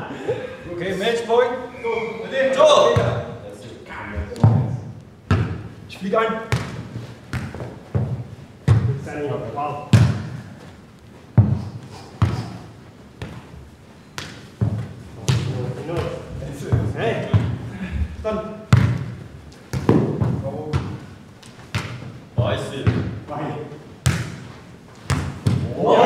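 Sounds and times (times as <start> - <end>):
football thudding on hard floor: 9.9 - 10.4, 11.4 - 12.5, 14.2 - 17.6, 18.7 - 21.0, 21.7 - 22.2, 25.1 - 25.7.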